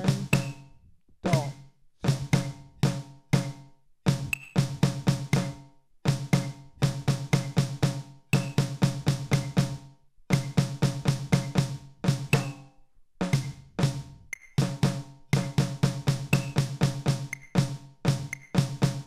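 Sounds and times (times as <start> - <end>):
drum struck with drumsticks: 0.0 - 0.7, 1.3 - 12.6, 13.2 - 19.0.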